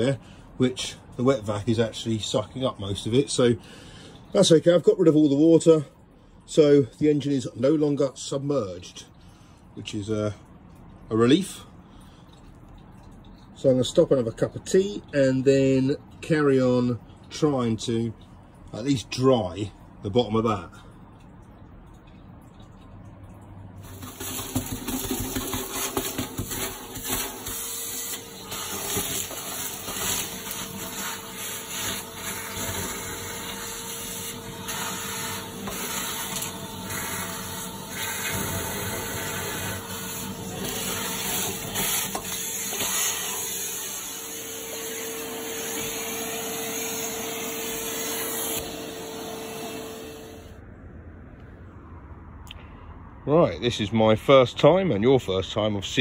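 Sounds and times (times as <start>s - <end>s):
hose sucking water and air: 9.6s - 50.5s
wet vac motor whine: 23.9s - 50.6s.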